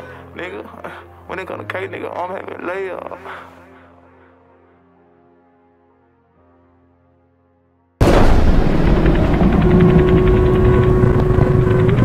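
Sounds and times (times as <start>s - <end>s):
dense low rumble: 8.0s - 12.0s
steady held tone: 8.0s - 12.0s
faint rapid ticking: 8.3s - 12.0s.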